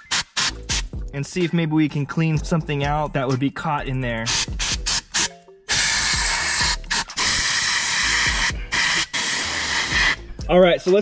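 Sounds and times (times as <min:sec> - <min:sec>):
compressed air can hissing: 0:00.0 - 0:01.0, 0:04.3 - 0:10.3.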